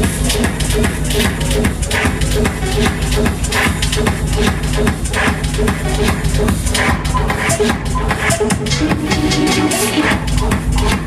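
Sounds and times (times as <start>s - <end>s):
techno dance music: 0.0s - 11.0s.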